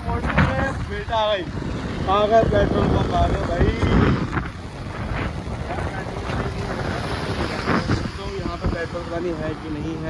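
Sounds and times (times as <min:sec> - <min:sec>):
motorcycle engine and road noise: 0:00.0 - 0:10.0
wind buffeting microphone: 0:00.0 - 0:10.0.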